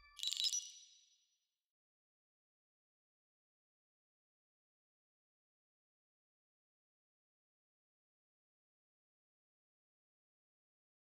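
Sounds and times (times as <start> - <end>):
high-pitched ding: 0.0 - 1.0.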